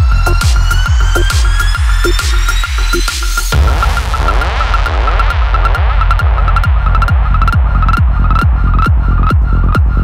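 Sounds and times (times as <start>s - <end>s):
four-on-the-floor kick drum: 0.0s - 10.0s
rolling bass line: 0.0s - 10.0s.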